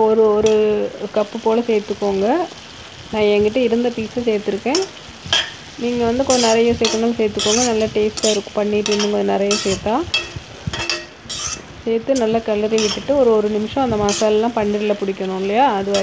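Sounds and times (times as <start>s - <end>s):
food sizzling: 0.0s - 16.0s
spoon scraping pan: 4.6s - 16.0s.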